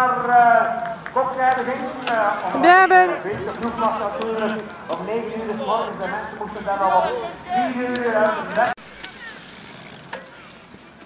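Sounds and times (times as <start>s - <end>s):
bike riding over grass and mud: 1.1s - 5.5s, 7.7s - 11.0s.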